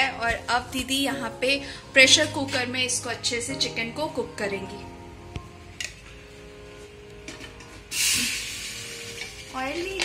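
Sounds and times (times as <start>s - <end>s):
light background music: 0.0s - 10.0s
paste sizzling in hot pot: 7.8s - 10.0s.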